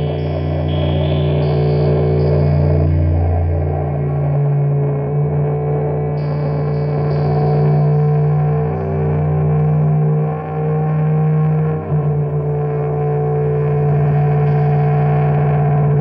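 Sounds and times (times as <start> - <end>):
distorted sustained drone chord: 0.0 - 16.0.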